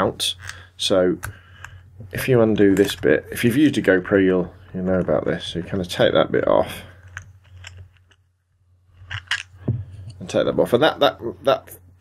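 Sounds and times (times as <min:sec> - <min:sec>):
plastic clicks and scrapes: 0:07.0 - 0:08.2.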